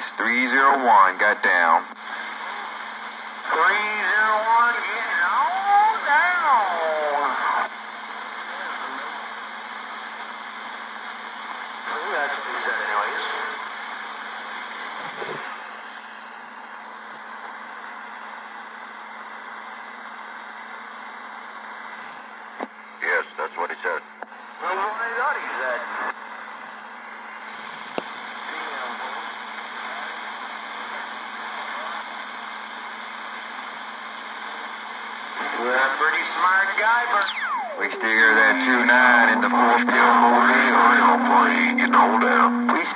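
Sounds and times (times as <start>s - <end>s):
voice over radio: 0.0s - 1.9s, 3.4s - 9.2s, 11.8s - 13.6s, 23.0s - 26.2s, 28.4s - 42.9s
garbled radio voices: 0.0s - 9.3s, 11.8s - 13.7s, 22.6s - 26.2s, 27.6s - 42.9s
choppy radio transmission: 0.0s - 42.9s
radio static hiss: 0.0s - 42.9s.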